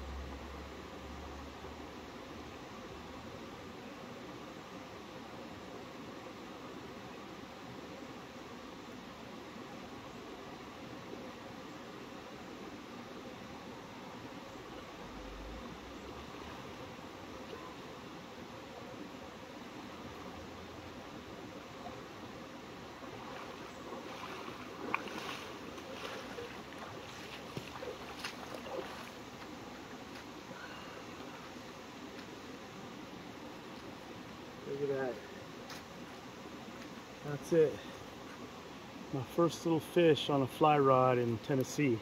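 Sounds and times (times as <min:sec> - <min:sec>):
creek flowing over rocks: 0:00.0 - 0:42.0
splashing from wading legs: 0:23.1 - 0:29.5.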